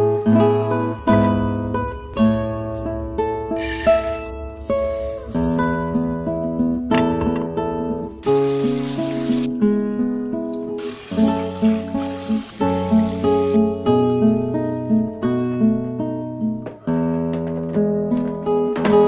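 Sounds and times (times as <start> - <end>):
acoustic guitar music: 0.0 - 19.0
tap running water over rice: 8.2 - 9.5, 10.5 - 13.8.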